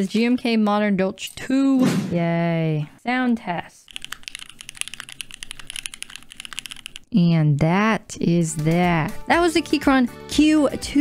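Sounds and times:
mechanical keyboard typing: 3.9s - 7.1s.

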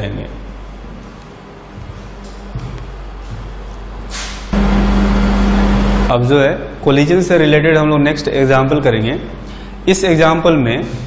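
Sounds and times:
loud steady low hum: 0.0s - 11.0s
short hiss: 4.1s - 4.5s.

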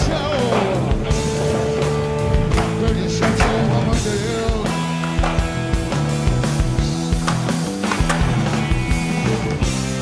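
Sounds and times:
held bass line: 0.0s - 10.0s
rock music: 0.0s - 10.0s
steady drum beat: 0.0s - 10.0s.

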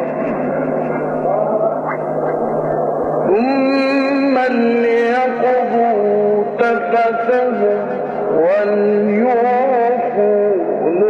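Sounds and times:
man reciting melodically: 3.2s - 11.0s.

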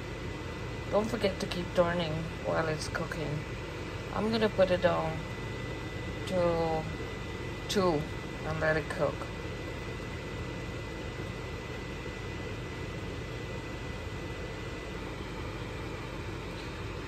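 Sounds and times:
fan-like hum and hiss: 0.0s - 17.0s.

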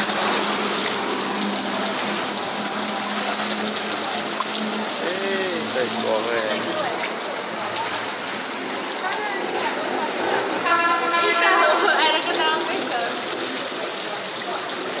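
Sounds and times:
water rushing: 0.0s - 15.0s
people's voices: 1.5s - 15.0s
vehicle horn: 10.6s - 12.0s.

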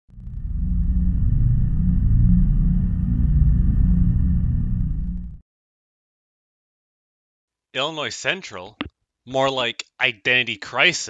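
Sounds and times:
deep steady rumble: 0.1s - 5.4s.

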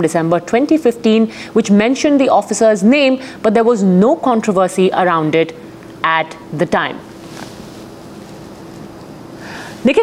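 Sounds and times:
background hiss: 5.6s - 10.0s.

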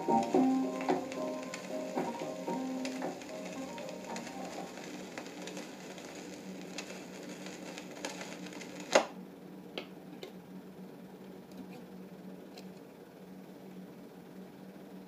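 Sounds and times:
reggae dub music: 0.0s - 4.7s
faint record ticks: 0.0s - 8.9s
record surface hiss: 0.0s - 15.0s.

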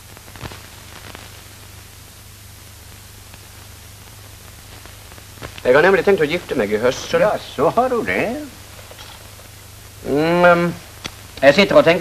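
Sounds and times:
film soundtrack hiss: 0.0s - 12.0s
faint ticks: 11.0s - 11.5s.

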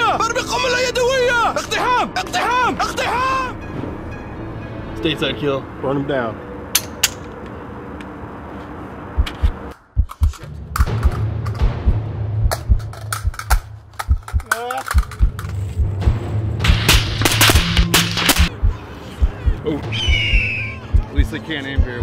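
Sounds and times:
music with deep pulsing beat: 9.1s - 22.0s
gunfire shots and bursts: 16.7s - 18.5s.

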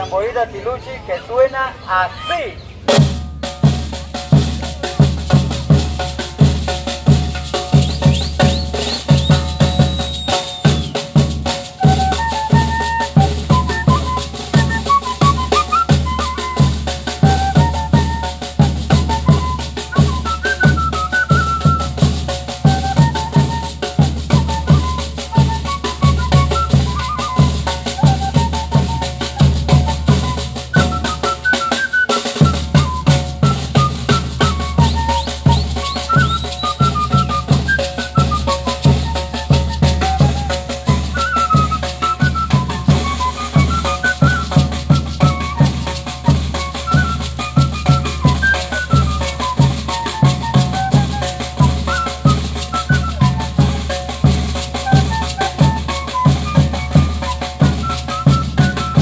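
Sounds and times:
snare drum: 2.9s - 59.0s
bass drum beat: 3.0s - 15.4s
flute melody: 3.0s - 59.0s
gourd rattle: 4.0s - 11.9s, 34.8s - 42.2s.

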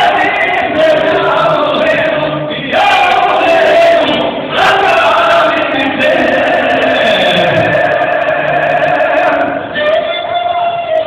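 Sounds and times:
men singing in harmony: 0.0s - 10.2s.

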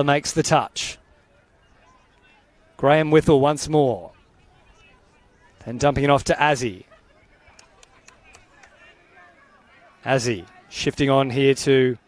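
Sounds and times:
soft clicks: 7.5s - 8.8s.

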